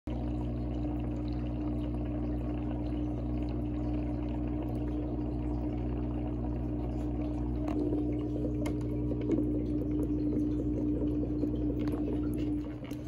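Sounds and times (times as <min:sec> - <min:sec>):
filter motor hum: 0:00.1 - 0:13.0
water pouring into tank: 0:00.1 - 0:13.0.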